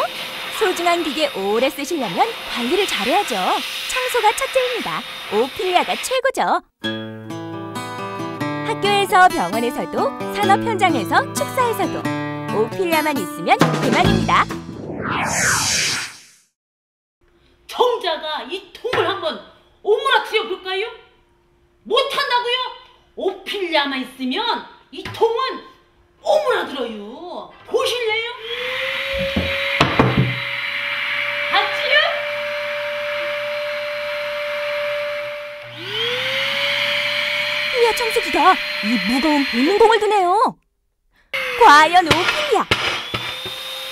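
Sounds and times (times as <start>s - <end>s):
handheld vacuum cleaner running: 0.0s - 6.2s, 28.4s - 40.2s, 41.4s - 43.9s
downward whoosh: 14.4s - 16.4s.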